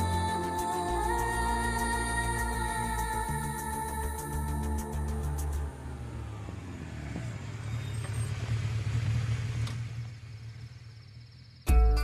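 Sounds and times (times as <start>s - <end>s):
car engine rumble passing: 0.0s - 11.6s.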